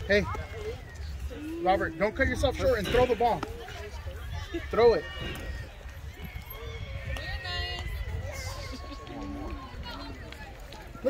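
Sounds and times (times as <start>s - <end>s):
distant people talking: 0.0s - 11.0s.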